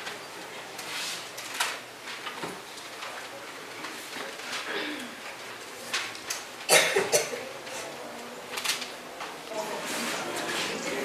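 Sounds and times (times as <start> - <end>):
person coughing: 4.7 - 5.2, 6.7 - 7.5.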